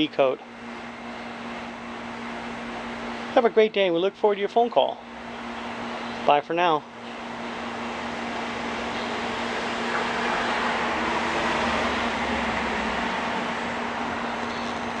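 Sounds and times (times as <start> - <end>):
low machine hum: 0.0 - 15.0
rushing noise: 9.4 - 14.2.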